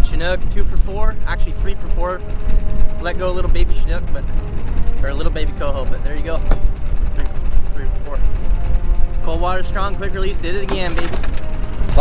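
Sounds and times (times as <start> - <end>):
man talking: 0.0 - 2.2, 3.0 - 4.3, 5.0 - 6.5, 7.1 - 8.3, 9.2 - 11.3
heavy low rumble: 0.0 - 12.0.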